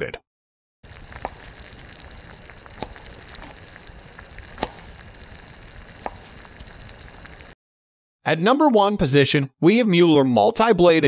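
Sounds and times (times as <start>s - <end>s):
steady sizzle-like hiss: 0.8s - 7.6s.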